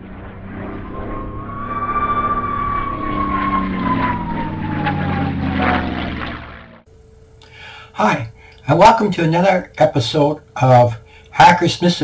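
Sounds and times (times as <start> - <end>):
propeller aircraft passing by: 0.0 - 6.9.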